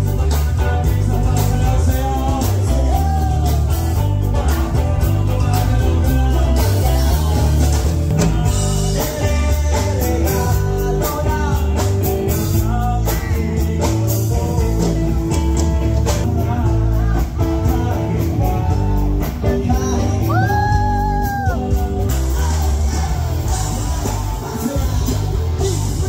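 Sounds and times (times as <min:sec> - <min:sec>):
drum kit: 0:00.0 - 0:26.0
electric guitar: 0:00.0 - 0:26.0
man singing: 0:00.0 - 0:26.0.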